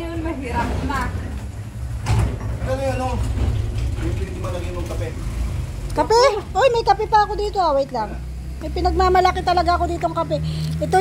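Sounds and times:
low rumble: 0.0 - 7.7.

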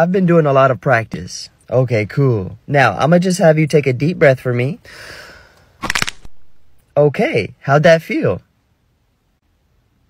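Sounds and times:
breath let out: 4.9 - 5.8
bones cracking: 5.8 - 6.5.

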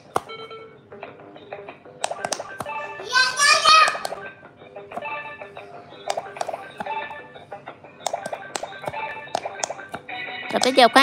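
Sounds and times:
button clicks: 2.0 - 2.7.

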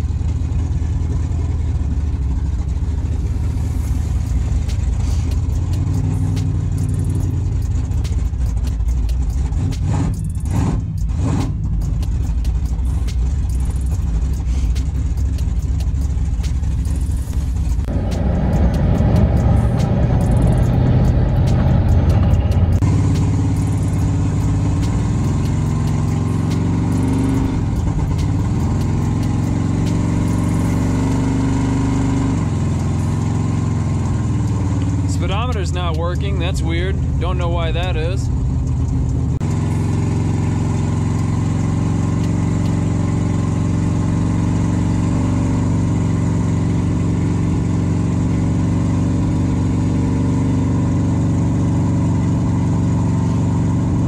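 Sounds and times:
truck engine cruising: 0.0 - 54.0.

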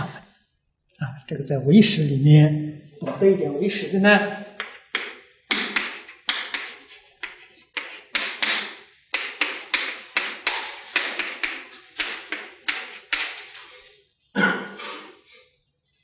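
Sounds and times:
chalk tapping and scraping on blackboard: 4.6 - 13.9.

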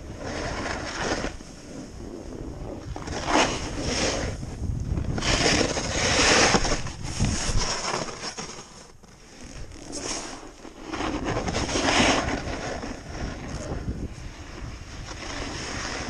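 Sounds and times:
wind buffeting microphone: 0.0 - 7.7, 10.9 - 16.0
snowboard scraping over snow: 0.0 - 16.0.

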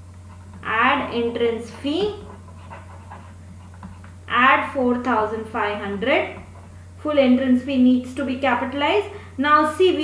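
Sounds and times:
low electrical hum: 0.0 - 10.0
person speaking: 0.3 - 10.0.

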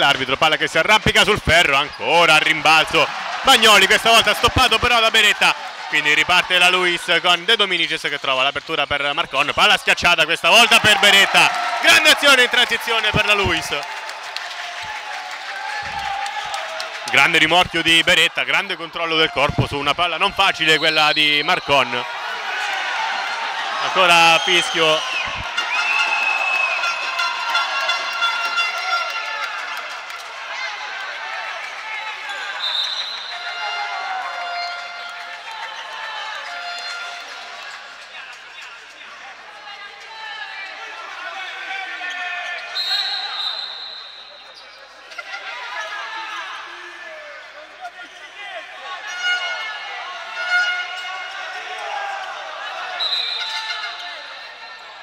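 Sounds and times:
voices of players and spectators: 0.0 - 55.0.

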